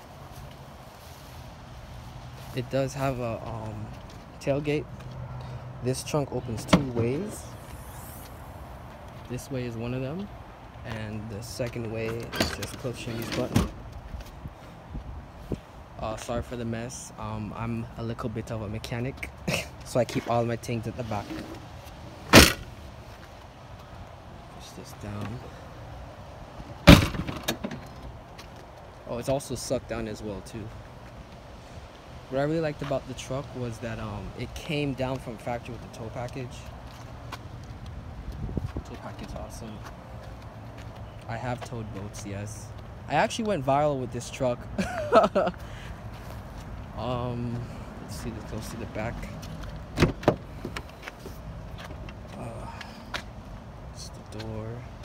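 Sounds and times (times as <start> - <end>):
car door clicks and handling: 22.3 - 22.6, 26.9 - 28.1, 49.9 - 51.2
car hatch thud: 22.3 - 22.6, 26.8 - 27.8.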